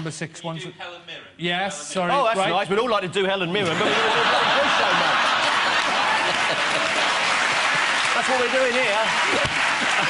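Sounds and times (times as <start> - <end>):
audience applauding: 3.9 - 10.0.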